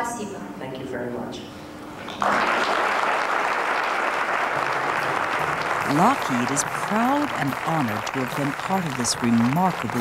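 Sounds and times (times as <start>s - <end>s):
audience applauding: 2.1s - 10.0s.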